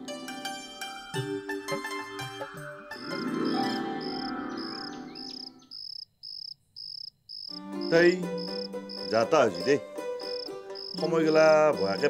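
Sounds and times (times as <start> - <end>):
held background music notes: 0.0 - 5.7, 7.6 - 12.0
crickets chirping: 2.9 - 11.1
person speaking: 7.8 - 9.8.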